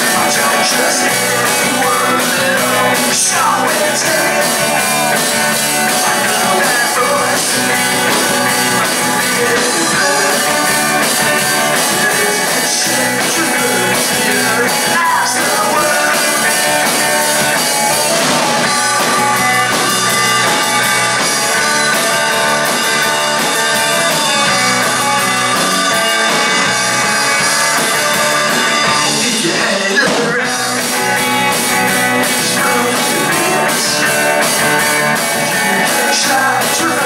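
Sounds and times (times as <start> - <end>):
live rock band playing: 0.0 - 37.0.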